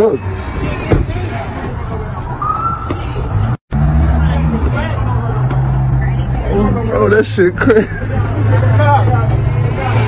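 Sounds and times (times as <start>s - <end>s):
vehicle engine humming: 0.0s - 10.0s.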